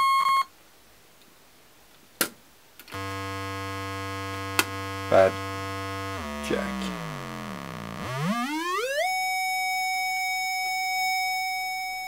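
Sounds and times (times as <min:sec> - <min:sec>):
higher buzzing synth tone: 0:02.9 - 0:09.6
low buzzing synth tone: 0:02.9 - 0:10.0.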